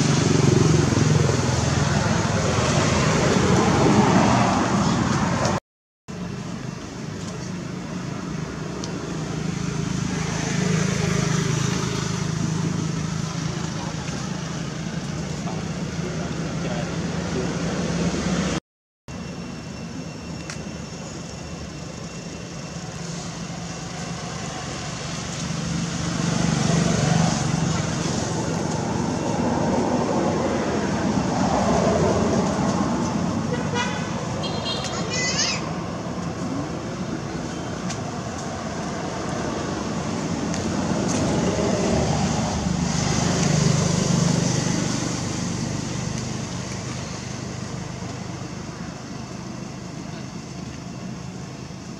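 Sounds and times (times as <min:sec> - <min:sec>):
passing motor traffic: 0:00.0 - 0:18.6, 0:19.2 - 0:51.9
vehicle horn: 0:33.5 - 0:35.4.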